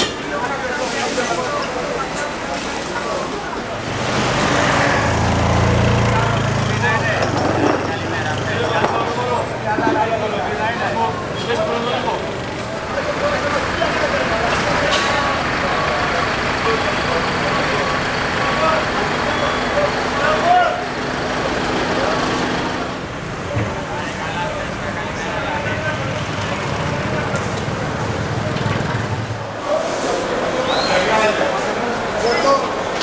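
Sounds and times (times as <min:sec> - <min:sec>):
people's voices: 0:00.0 - 0:33.0
vehicles passing: 0:00.0 - 0:33.0.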